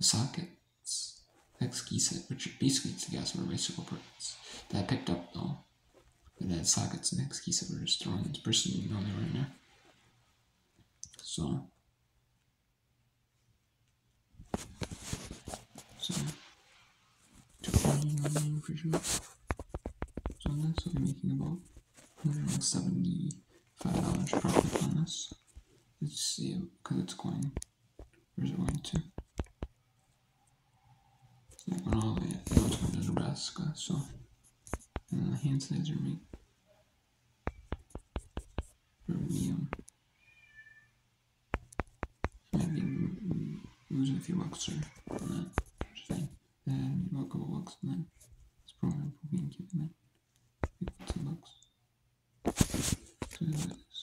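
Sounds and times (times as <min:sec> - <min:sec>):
rustling: 0:14.4 - 0:26.0, 0:52.4 - 0:54.0.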